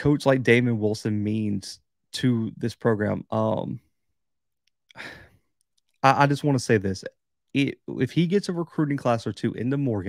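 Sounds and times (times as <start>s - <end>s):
man speaking: 0.0s - 3.8s, 6.0s - 10.0s
man sighing breath: 4.9s - 5.4s.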